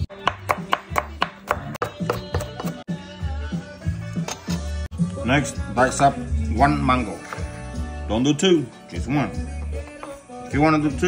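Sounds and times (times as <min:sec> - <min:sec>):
background music with beat: 0:00.0 - 0:11.0
knife chopping on wooden board: 0:00.1 - 0:02.8.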